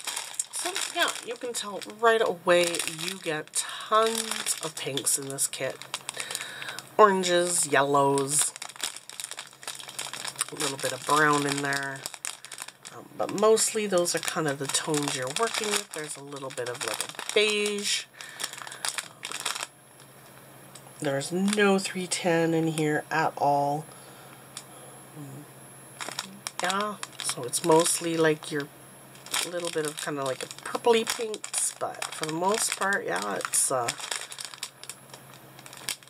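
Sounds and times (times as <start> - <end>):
plastic wrapping crinkling: 0.0 - 23.0, 26.0 - 36.0.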